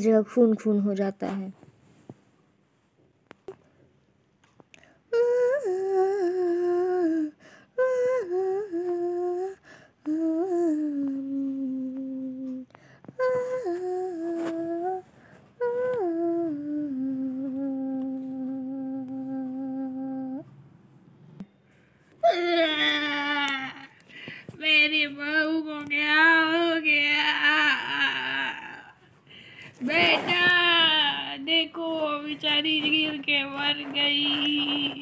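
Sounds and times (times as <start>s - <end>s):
woman humming slow tune: 5.1s - 20.5s, 22.2s - 24.0s, 25.2s - 29.0s.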